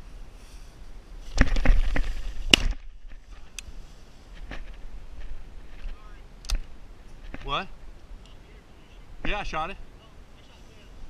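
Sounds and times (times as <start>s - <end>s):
cracks: 1.3s - 3.7s, 4.3s - 7.6s.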